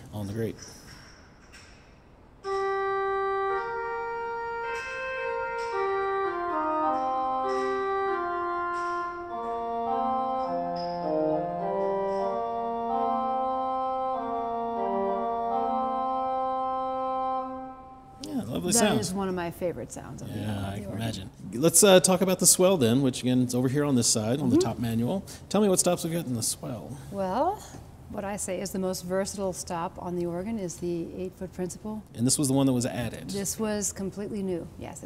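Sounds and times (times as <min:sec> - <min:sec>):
pipe organ melody: 0:02.4 - 0:19.2.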